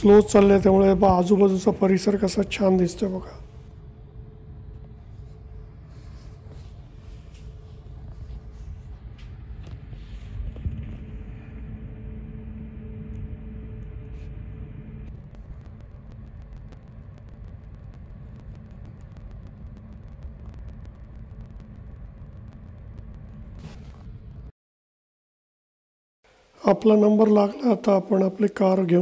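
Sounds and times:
faint hum: 0.0 - 24.5
low rumble of ferry: 3.4 - 20.0.

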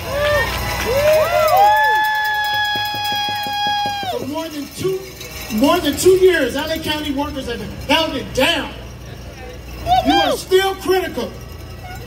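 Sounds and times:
crowd cheering and whooping: 0.0 - 4.3, 9.7 - 10.6.

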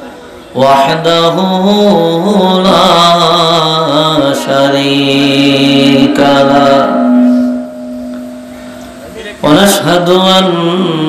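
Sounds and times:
man chanting recitation: 0.5 - 7.5, 9.4 - 11.0
steady tone: 5.1 - 11.0.

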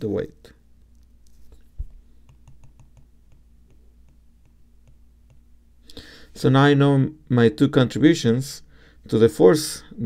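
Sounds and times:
low steady hum: 0.0 - 10.0
stylus tapping on glass screen: 1.8 - 5.5.

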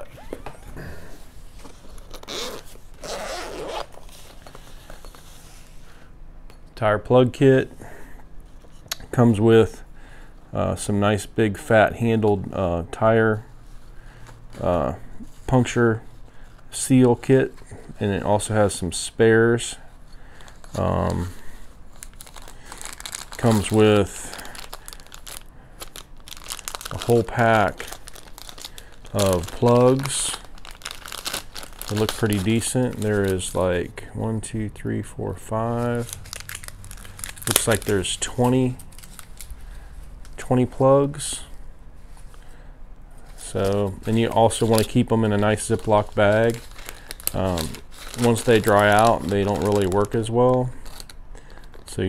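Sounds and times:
zipper being pulled open: 2.0 - 4.0
plastic bag crinkling: 20.2 - 33.6, 35.6 - 40.4, 43.2 - 52.0.

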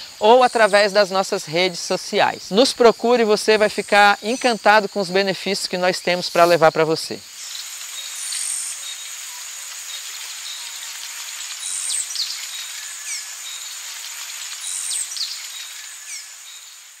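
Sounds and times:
high-pitched insect drone: 0.0 - 17.0.

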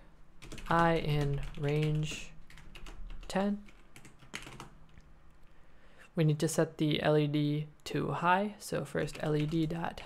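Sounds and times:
computer keyboard key clicks: 3.7 - 5.1.

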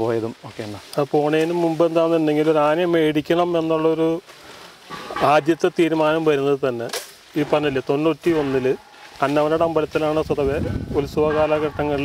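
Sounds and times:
man talking: 0.0 - 4.2, 5.2 - 12.0.

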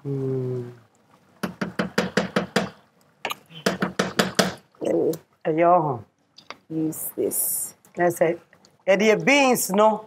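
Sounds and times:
wooden spatula knocking in pot: 1.4 - 2.8, 3.6 - 4.7.

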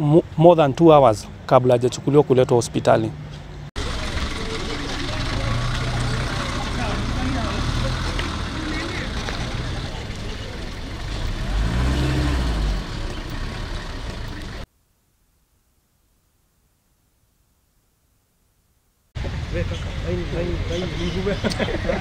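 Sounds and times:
outdoor background noise: 0.0 - 22.0
van engine running: 3.8 - 14.7.

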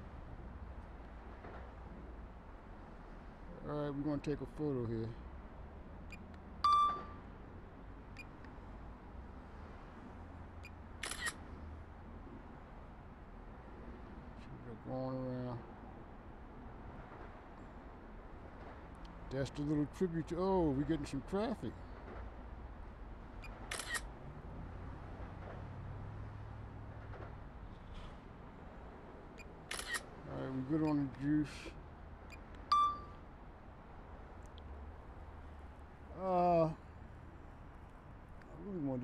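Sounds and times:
low outdoor rumble and hiss: 0.0 - 39.0.

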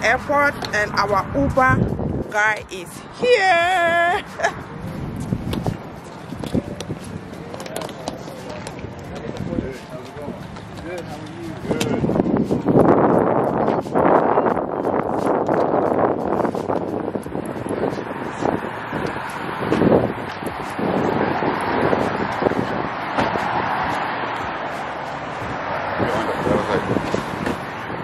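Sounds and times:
wind buffeting microphone: 0.0 - 28.0.

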